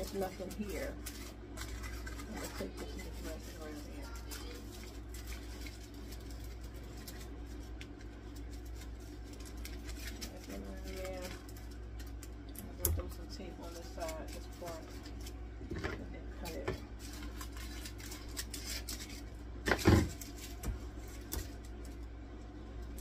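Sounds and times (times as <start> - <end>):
aluminum foil crinkling: 0.0 - 23.0.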